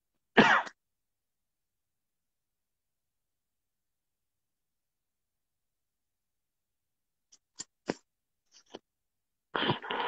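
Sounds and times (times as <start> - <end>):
person clearing throat: 0.4 - 0.8.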